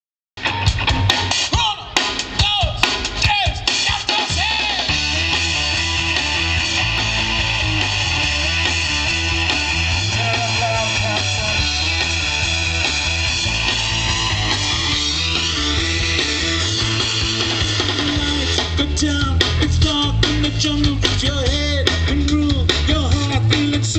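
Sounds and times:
rock band playing live: 0.4 - 23.9
sliding guitar notes: 4.9 - 19.1.

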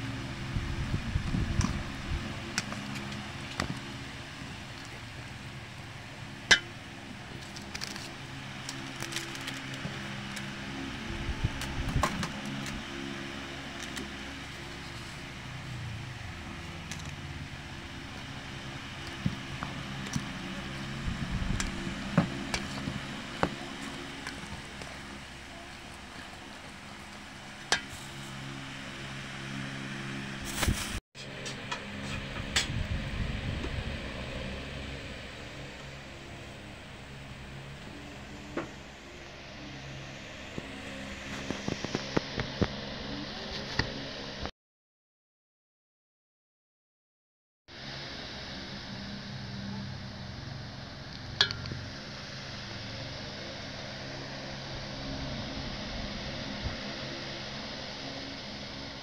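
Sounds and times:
steady low hum: 0.0 - 44.5, 47.7 - 59.0.

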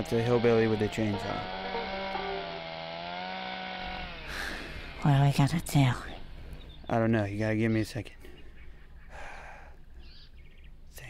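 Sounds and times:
chainsaw engine running: 0.0 - 6.5.

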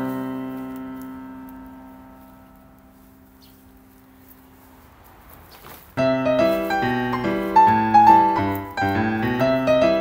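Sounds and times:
piano chord ringing: 0.0 - 4.6, 6.0 - 10.0.

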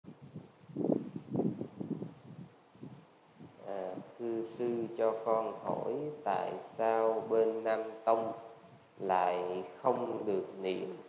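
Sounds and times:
microphone handling bumps: 0.2 - 4.1
person speaking: 3.6 - 11.0.

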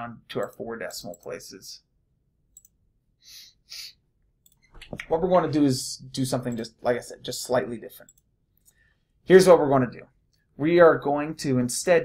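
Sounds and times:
computer mouse clicks: 2.5 - 2.8, 4.4 - 5.1
short breaths: 8.6 - 9.2.

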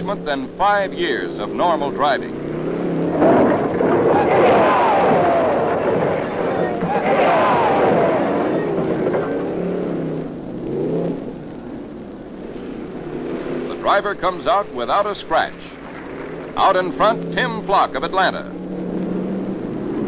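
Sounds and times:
race car engines passing: 0.0 - 20.0
crowd shouting: 3.1 - 9.9.

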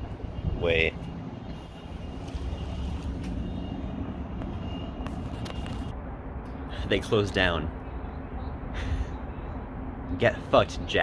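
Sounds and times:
city street rumble: 0.0 - 11.0.

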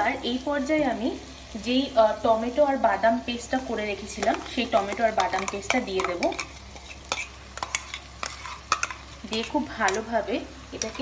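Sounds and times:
paste sizzling in hot oil: 0.0 - 11.0.

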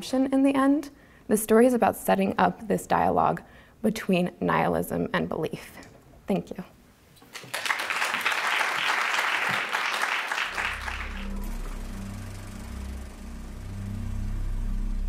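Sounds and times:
audience applauding: 7.2 - 12.2
low sustained music notes: 10.4 - 15.0.

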